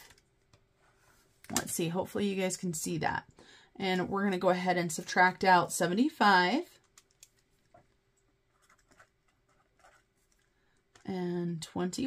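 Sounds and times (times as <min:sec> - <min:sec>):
pen scratching on paper: 0:08.5 - 0:10.1.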